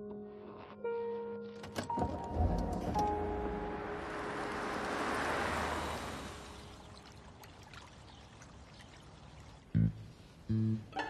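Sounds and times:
background music: 0:00.0 - 0:05.1, 0:09.8 - 0:11.0
deep plucked note: 0:09.8 - 0:11.0.

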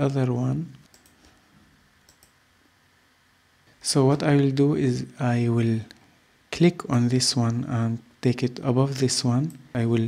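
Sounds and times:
faint mouse clicks: 0:00.7 - 0:01.4, 0:02.0 - 0:02.4.

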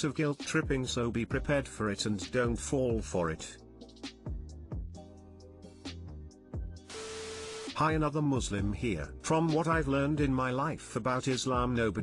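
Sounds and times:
quiet music of held chords: 0:00.0 - 0:12.0
television static hiss: 0:06.9 - 0:07.8.

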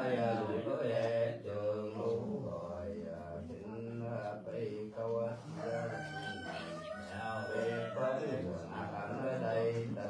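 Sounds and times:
man chanting in low voice: 0:00.0 - 0:10.0.

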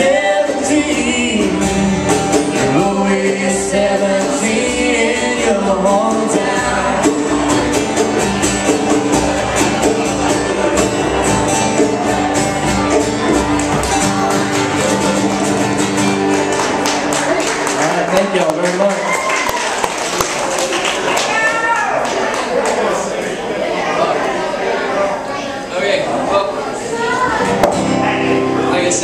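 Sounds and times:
country band playing with vocals: 0:00.0 - 0:19.0, 0:26.8 - 0:29.0
voices in room: 0:17.1 - 0:29.0.

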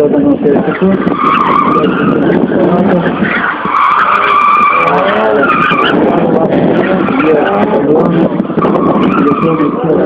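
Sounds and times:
car engine revving: 0:00.0 - 0:10.0
tyres squealing: 0:00.7 - 0:07.9.

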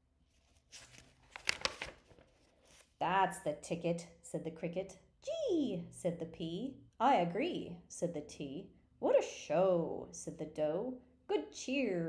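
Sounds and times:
paper page turning: 0:00.3 - 0:03.0.

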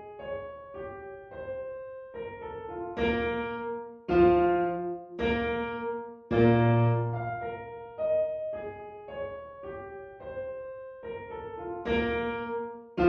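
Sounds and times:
solo piano: 0:00.0 - 0:13.0.

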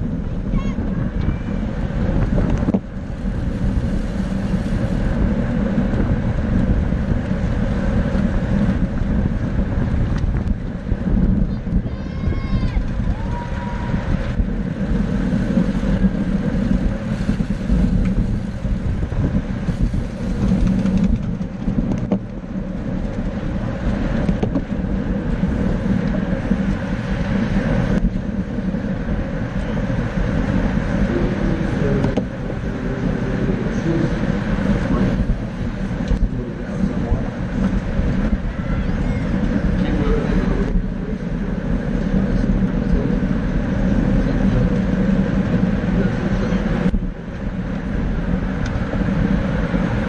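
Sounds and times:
bicycle tyre and road noise: 0:00.0 - 0:50.0
wind rush over microphone: 0:00.0 - 0:50.0.

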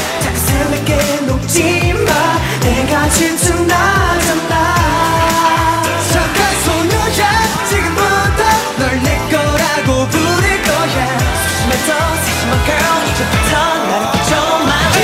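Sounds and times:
male group singing: 0:00.0 - 0:15.0
pop backing track: 0:00.0 - 0:15.0.

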